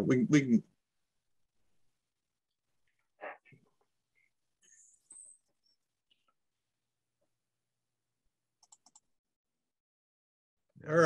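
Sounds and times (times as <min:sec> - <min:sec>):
faint clicks: 0:08.6 - 0:09.1.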